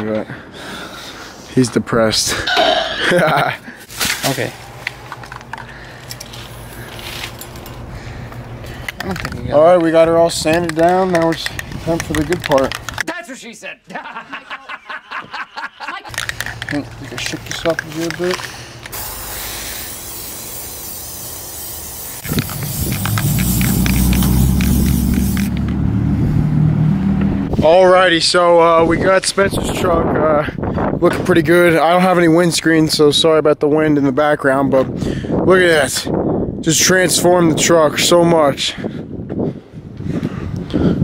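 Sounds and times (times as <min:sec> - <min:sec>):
low rumble with steady hum: 0:16.1 - 0:27.7
aerosol spray can hissing: 0:18.9 - 0:25.6.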